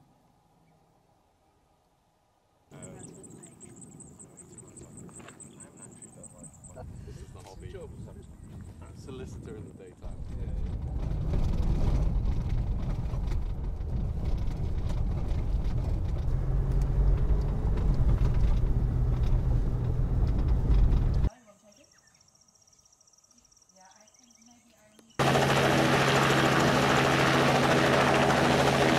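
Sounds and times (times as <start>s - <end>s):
road rumble: 10.0s - 21.3s
vehicle engine drone: 10.0s - 21.3s, 25.2s - 28.9s.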